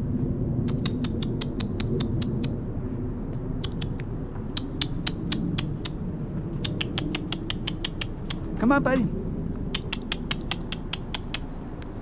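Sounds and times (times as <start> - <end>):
steady low rumble: 0.0 - 12.0
rapid sharp clicking: 0.6 - 2.5, 3.6 - 6.0, 6.6 - 8.5, 9.7 - 11.5.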